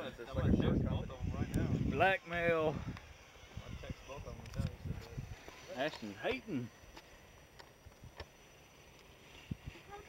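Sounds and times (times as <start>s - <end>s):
outdoor background: 0.0s - 10.0s.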